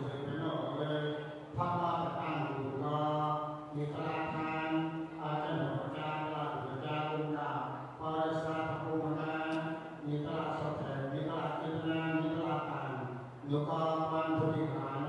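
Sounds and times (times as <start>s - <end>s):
monk chanting into a microphone: 0.0s - 15.0s.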